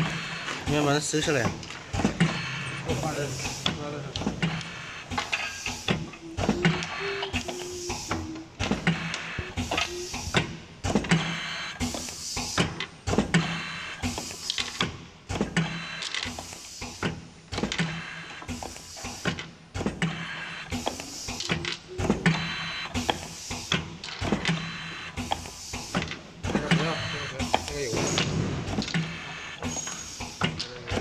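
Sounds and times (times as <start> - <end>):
machine clicks and knocks: 0.0 - 2.5, 3.4 - 31.0.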